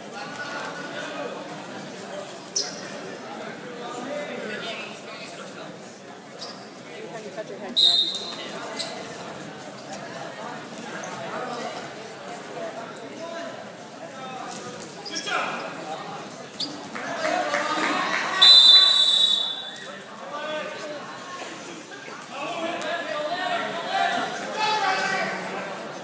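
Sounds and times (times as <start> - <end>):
crowd chatter and voices: 0.0 - 26.0
referee's whistle blast: 7.8 - 8.3, 18.4 - 19.8.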